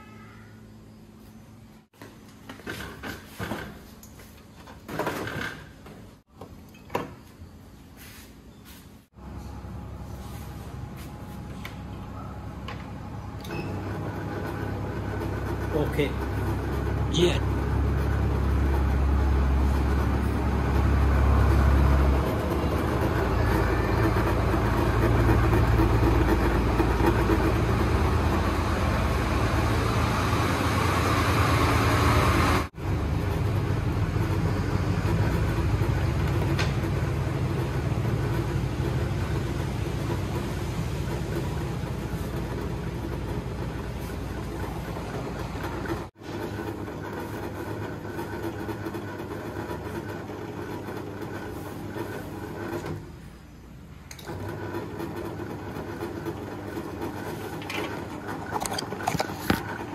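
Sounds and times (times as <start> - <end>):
inverter humming: 9.1 - 59.9.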